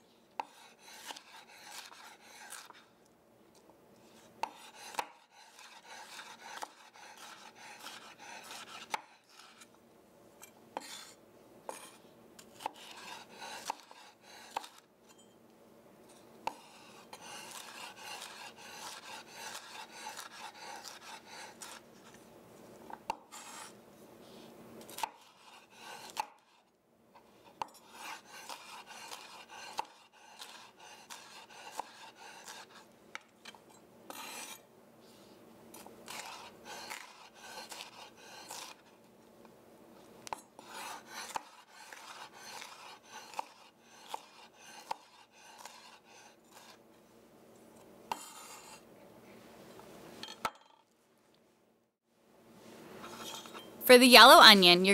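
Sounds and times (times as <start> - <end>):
knife chopping on wooden board: 4.4 - 9.2, 11.7 - 14.8, 40.3 - 45.9.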